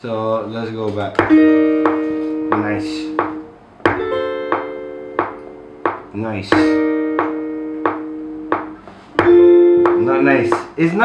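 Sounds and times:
acoustic guitar chords: 1.2 - 10.8.

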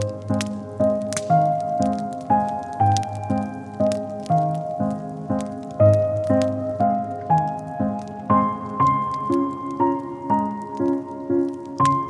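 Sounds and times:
slow gentle piano music: 0.0 - 12.0
wood fire crackling: 0.0 - 12.0.

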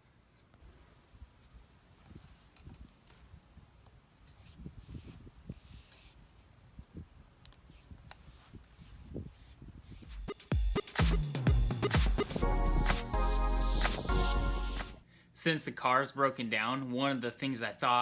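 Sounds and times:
loud background music: 10.3 - 15.0.

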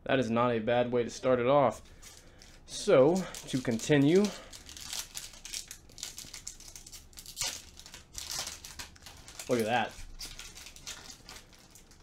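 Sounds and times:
foil wrapper crinkling and tearing: 1.9 - 12.0.

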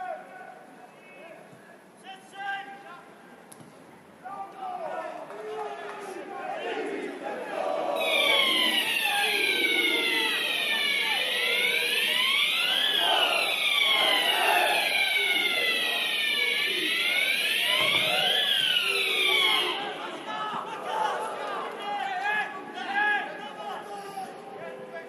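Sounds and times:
murmur of crowd voices: 0.0 - 25.0
wailing siren: 8.0 - 20.4.

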